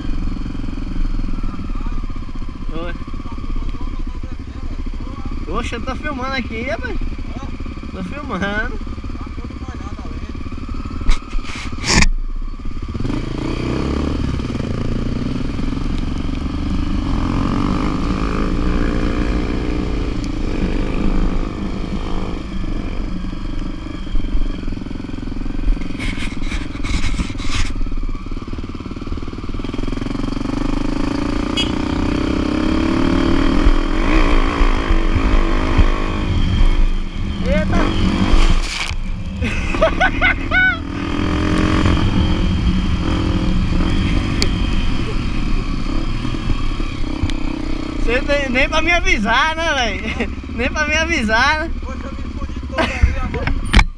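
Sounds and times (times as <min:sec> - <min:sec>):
motorcycle engine revving: 0:00.0 - 0:53.9.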